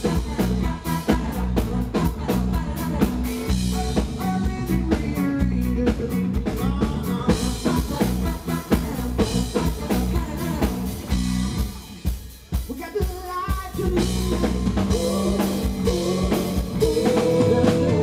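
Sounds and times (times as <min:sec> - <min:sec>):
people singing: 0:00.0 - 0:12.0, 0:13.5 - 0:18.0
live reggae band playing: 0:00.0 - 0:18.0.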